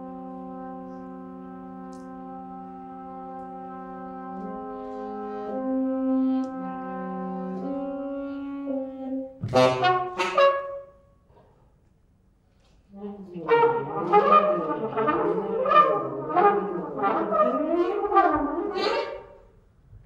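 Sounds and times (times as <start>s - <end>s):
trumpet and saxophone playing: 0.0s - 11.1s, 13.0s - 19.5s.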